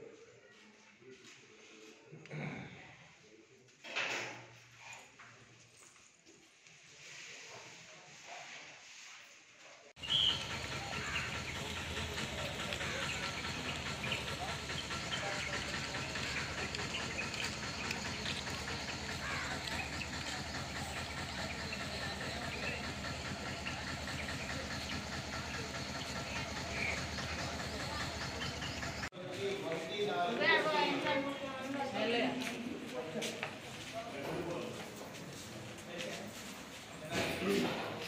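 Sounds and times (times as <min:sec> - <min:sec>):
faint indistinct voices: 0:00.0 - 0:05.2, 0:09.6 - 0:38.0
steady background noise: 0:10.0 - 0:38.0.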